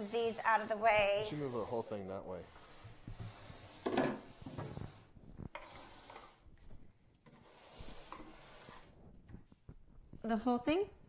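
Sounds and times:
rubbing and scraping on wood: 0.0s - 10.2s.

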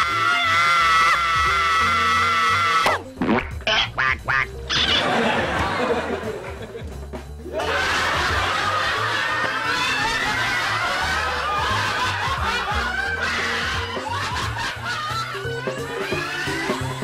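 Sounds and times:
music: 0.0s - 17.0s
quacking comedy sound effects: 2.9s - 5.2s
sitcom laughter: 3.7s - 6.8s, 7.5s - 17.0s.

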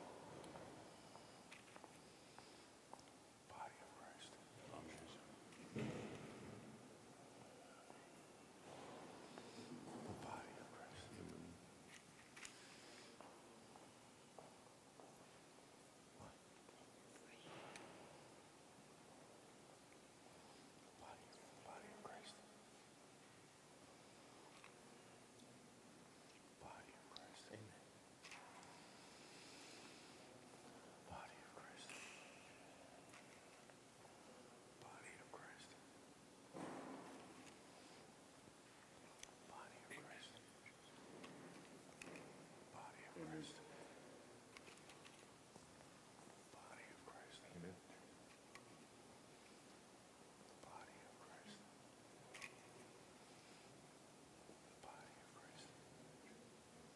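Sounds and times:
soft noise of people walking: 0.0s - 56.9s.

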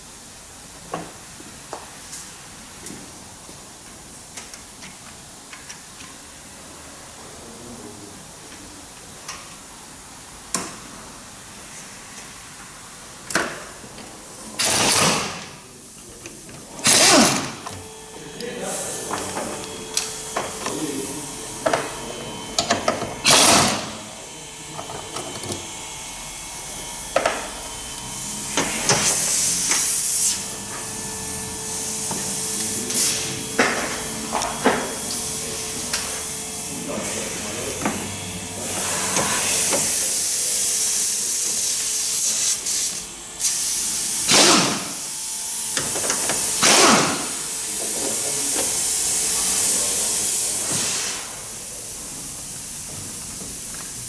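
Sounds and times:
steady hiss: 38.8s - 54.0s
short loud hissing bursts: 48.4s - 51.4s.

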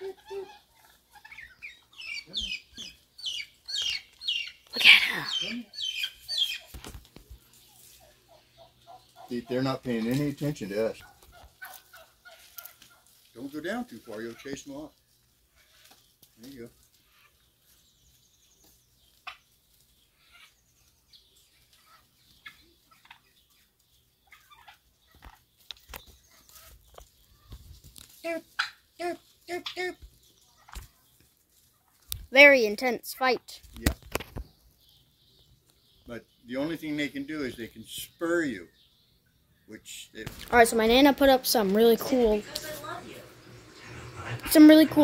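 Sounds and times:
turkey high falling calls: 0.0s - 6.9s, 7.9s - 13.2s, 28.2s - 31.0s
turkey soft clucks: 0.0s - 14.9s, 15.5s - 17.8s, 18.6s - 19.5s, 20.1s - 20.6s, 21.5s - 27.6s, 28.5s - 32.2s.

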